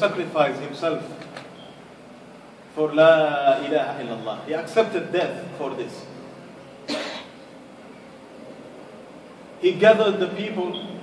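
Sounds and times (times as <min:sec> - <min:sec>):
person coughing: 0:06.9 - 0:07.4.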